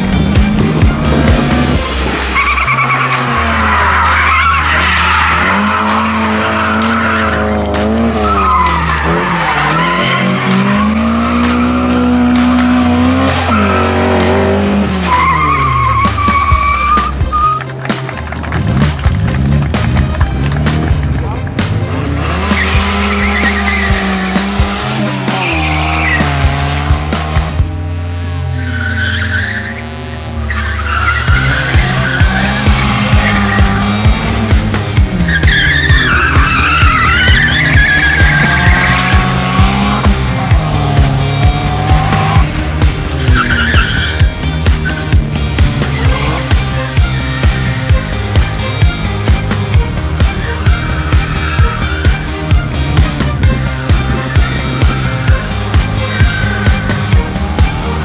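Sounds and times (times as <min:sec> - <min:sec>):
background music with bass line: 0:00.0 - 0:58.0
car engine revving: 0:00.0 - 0:58.0
tyres squealing: 0:01.8 - 0:17.8, 0:22.1 - 0:26.9, 0:30.5 - 0:58.0.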